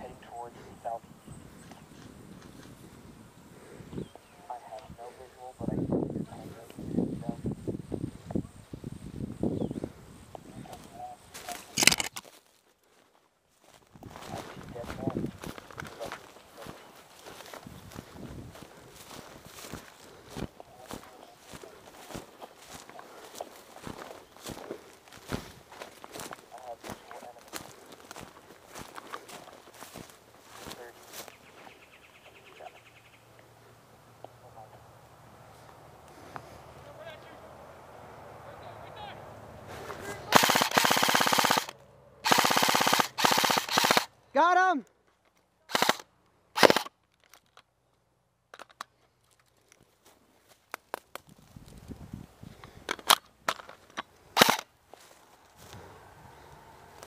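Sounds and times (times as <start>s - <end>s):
footsteps in dry leaves: 11.3s - 31.8s, 54.9s - 57.0s
airsoft rifle firing bursts: 40.3s - 44.1s, 45.7s - 46.0s, 46.6s - 46.9s, 54.4s - 54.6s.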